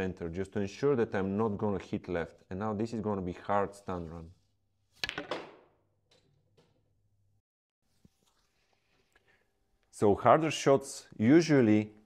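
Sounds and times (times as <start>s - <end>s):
cue ball cracking into ball: 5.0s - 5.8s.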